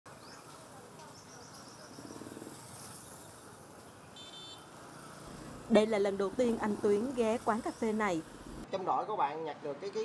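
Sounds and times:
faint street background: 0.1 - 10.0.

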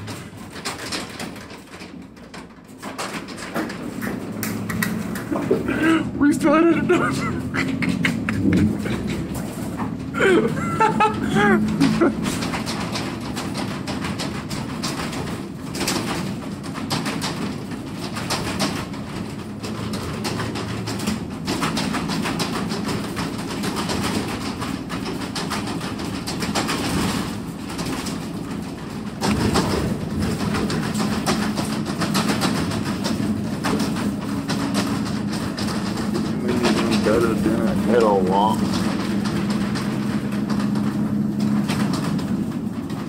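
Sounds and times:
truck cargo box rumbling and rattling: 0.0 - 43.0.

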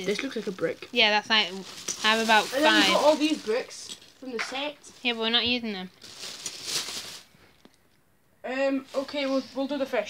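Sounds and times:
plastic bags rustling: 0.0 - 7.7.

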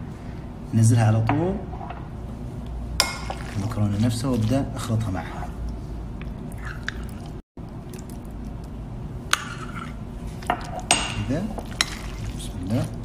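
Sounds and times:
spoon stirring pasta in sauce: 7.8 - 13.0.

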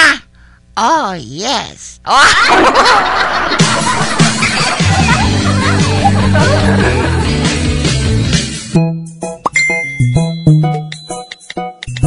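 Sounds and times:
burst of laughter: 2.3 - 7.3
music with low bass line: 3.7 - 9.3.

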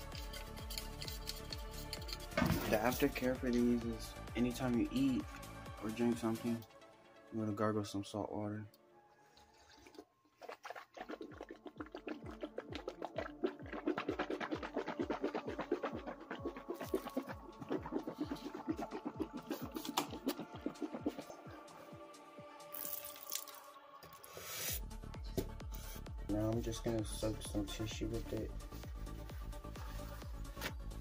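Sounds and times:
background music with steady beat: 0.0 - 9.1, 11.4 - 31.0
spitting with splash: 9.7 - 21.5
person gargling: 10.9 - 21.5.

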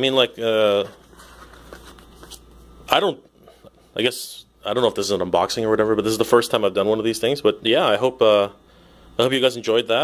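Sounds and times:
rustling and handling noise: 0.0 - 4.1.

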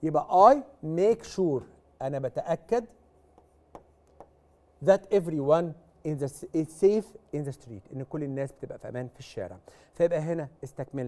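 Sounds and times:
pen tapping on screen: 3.3 - 4.4.

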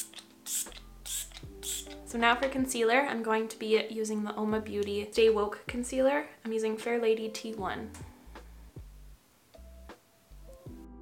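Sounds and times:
spray bottle hissing sprays: 0.0 - 2.1
soft background music: 0.0 - 11.0.

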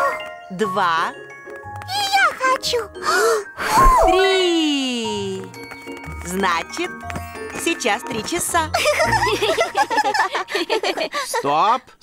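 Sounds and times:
children laughing: 8.7 - 11.4.

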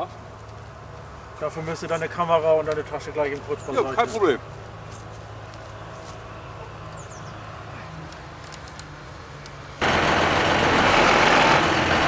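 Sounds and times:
tractor engine idling: 0.0 - 12.0
loud rushing noise: 9.8 - 12.0.

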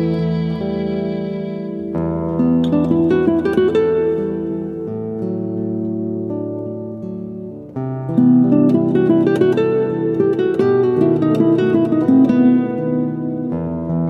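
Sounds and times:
plucked acoustic guitar: 0.0 - 14.0.

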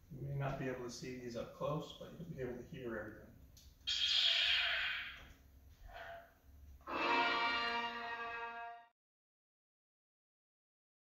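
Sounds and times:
sustained overtoned tone: 6.9 - 8.9.

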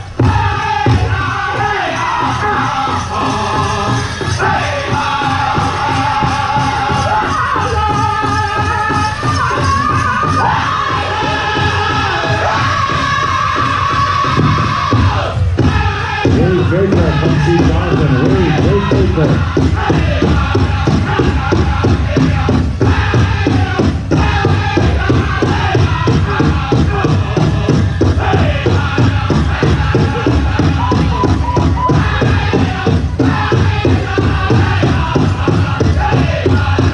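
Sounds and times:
large drum strokes: 0.0 - 36.9
men singing in high unison: 0.0 - 36.9.

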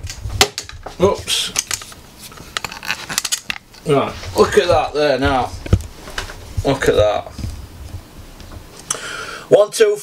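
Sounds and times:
person speaking: 0.9 - 2.6, 3.7 - 10.0.

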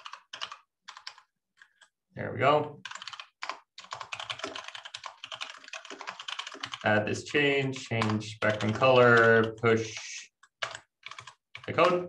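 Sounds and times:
fast keyboard typing: 0.0 - 1.9, 2.8 - 7.1, 7.7 - 12.0.

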